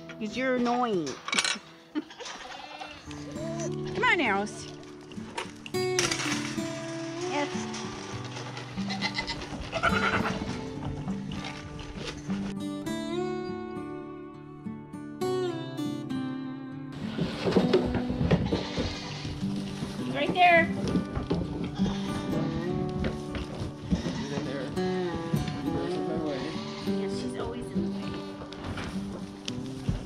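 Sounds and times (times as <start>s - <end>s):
background music: 0.0s - 30.0s
goats bleating: 2.0s - 3.9s, 6.9s - 11.6s, 18.4s - 19.4s, 21.7s - 23.2s, 23.8s - 28.6s.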